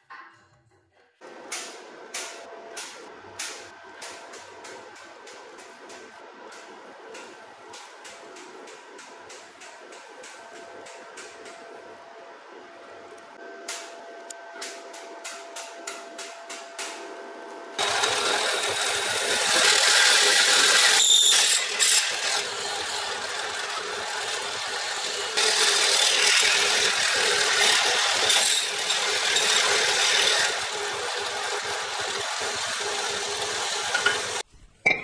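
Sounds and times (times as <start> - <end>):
drill press grinding metal: 17.8 - 34.4.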